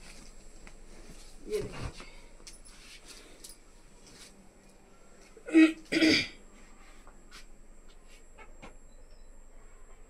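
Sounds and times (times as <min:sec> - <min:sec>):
woman coughing: 0:05.5 - 0:06.4.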